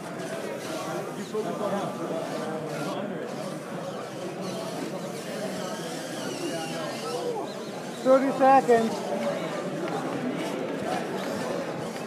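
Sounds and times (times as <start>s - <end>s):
indistinct chatter of crowd: 0.0s - 12.0s.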